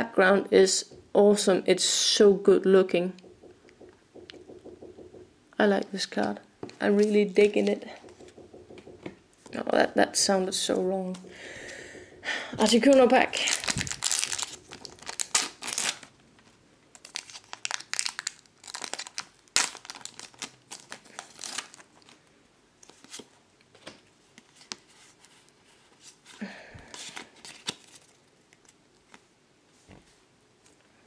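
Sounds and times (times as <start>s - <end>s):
cards rustling and clicking: 12.6s - 16.1s, 26.9s - 29.2s
foil wrapper tearing and crinkling: 13.4s - 16.1s, 17.0s - 22.0s.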